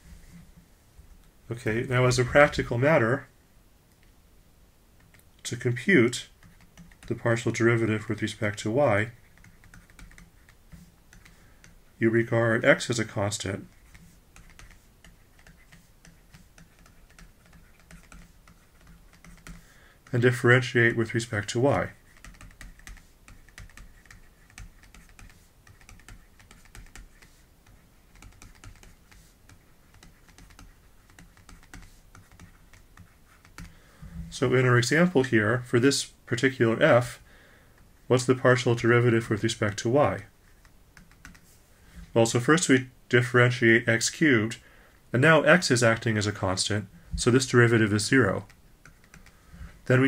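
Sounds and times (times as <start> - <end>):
low steady hum: 0.0 - 50.0
stylus ticking on tablet screen: 6.4 - 7.1, 9.2 - 11.8, 13.8 - 19.6, 22.0 - 27.3, 28.1 - 33.8.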